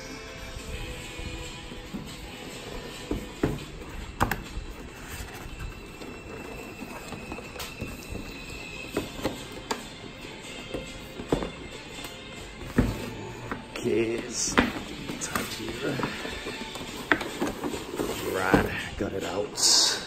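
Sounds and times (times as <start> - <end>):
soft background music: 0.0 - 20.0.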